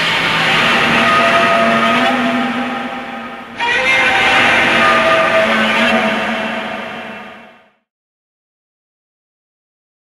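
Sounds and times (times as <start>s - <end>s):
noisy horror sound effect: 0.0s - 7.9s.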